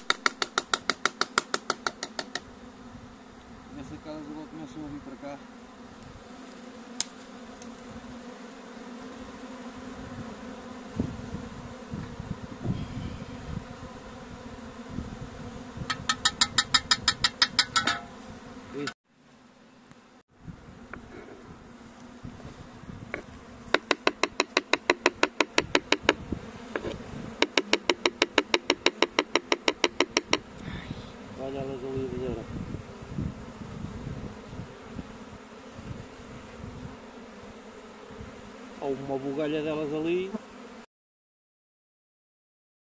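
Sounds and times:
bee swarm buzzing: 0.0s - 40.9s.

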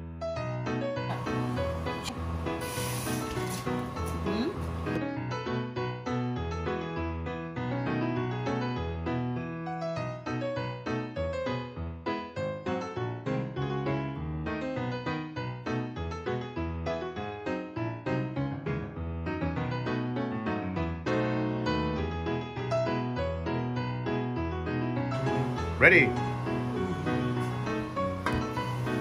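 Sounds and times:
background piano music: 0.0s - 29.0s.

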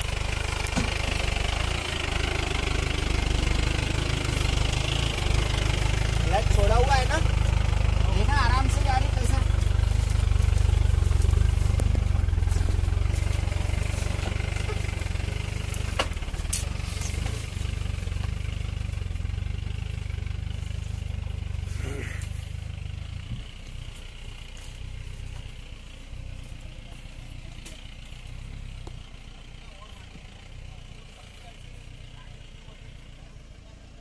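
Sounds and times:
diesel engine rumbling under load: 0.0s - 34.0s.

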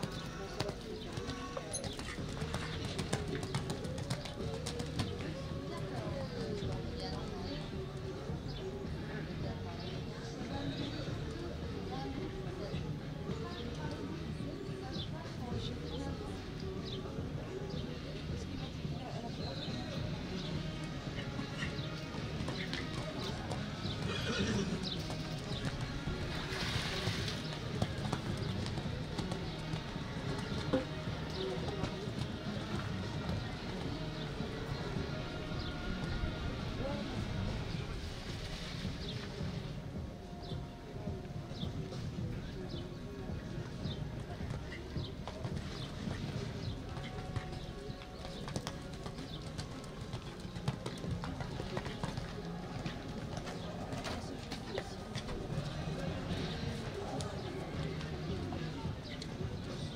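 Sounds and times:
distant voices: 0.0s - 59.9s
hoofbeats on sand: 0.0s - 59.9s
music: 0.0s - 59.9s
birds calling: 13.3s - 40.8s.

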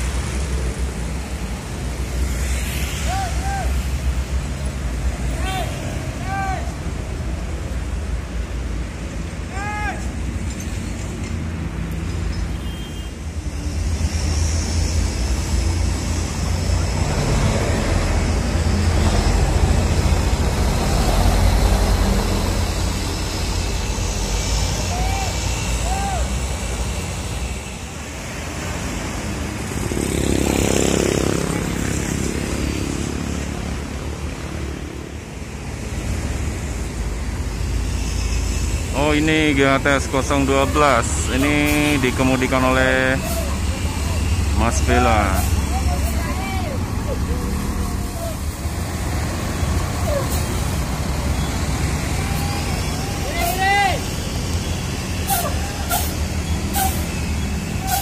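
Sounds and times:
diesel bus engine pulling away: 13.8s - 58.0s.

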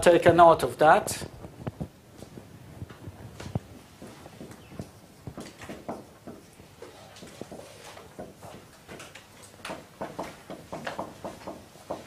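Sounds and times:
taps and knocks on a board: 3.5s - 6.5s, 7.2s - 12.0s.

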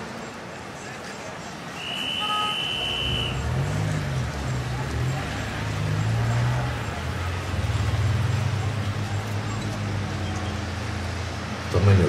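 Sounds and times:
car engine passing: 1.5s - 12.0s
high car horn toot: 1.8s - 3.6s.

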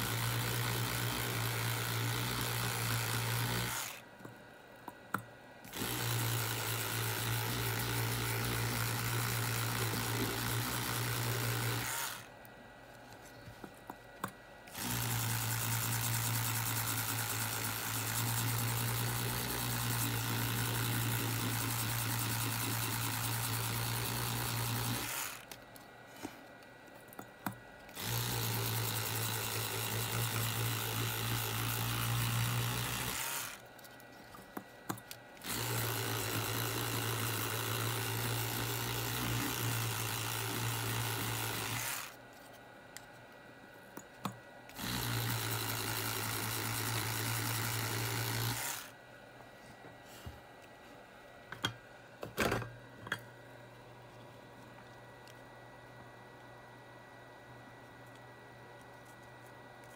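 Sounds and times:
electric toothbrush buzzing: 0.0s - 4.0s, 5.7s - 12.3s, 14.7s - 25.6s, 27.9s - 33.7s, 35.4s - 42.2s, 44.7s - 49.0s.

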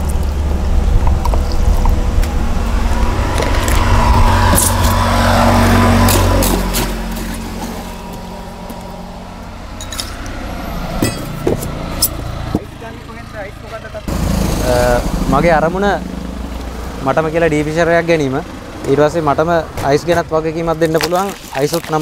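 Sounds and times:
vehicle engine rumble passing: 0.0s - 21.0s.

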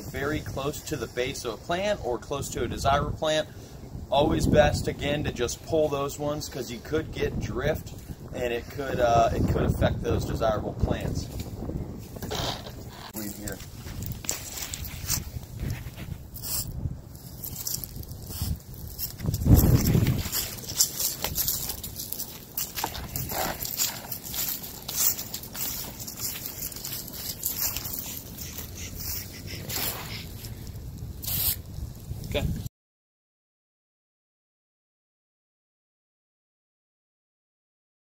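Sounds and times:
footsteps on leaves and mulch: 13.1s - 32.2s.

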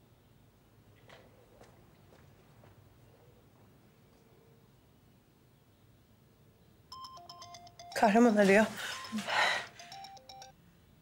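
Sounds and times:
phone ringtone beeping melody: 6.9s - 10.6s.

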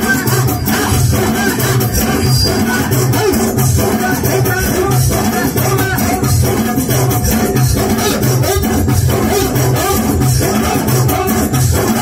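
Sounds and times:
live band music through a speaker: 0.0s - 12.0s.

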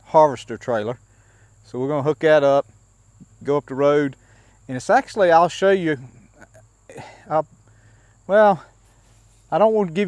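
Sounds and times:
insects droning: 0.0s - 10.0s
man speaking haltingly: 8.3s - 8.8s, 9.5s - 10.0s.

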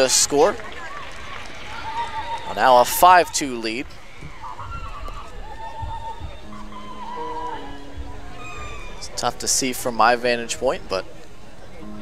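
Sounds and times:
crowd ambience: 0.0s - 12.0s
distant music over public address: 0.0s - 12.0s.

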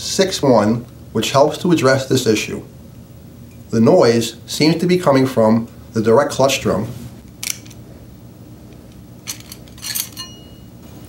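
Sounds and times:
metal clutch plates clinking: 9.2s - 10.7s.

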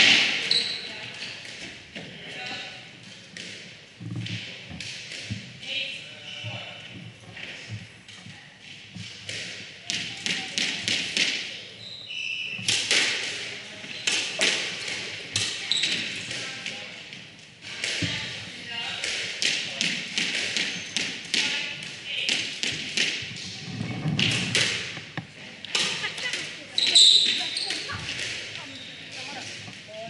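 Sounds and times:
sneakers squeaking: 0.3s - 1.4s, 5.7s - 8.4s, 11.6s - 12.9s, 13.8s - 14.4s, 15.4s - 16.3s, 20.6s - 21.3s, 24.9s - 30.0s
squash ball hitting rackets and walls: 2.9s - 5.6s, 8.8s - 11.7s, 12.5s - 23.5s, 24.1s - 28.6s.

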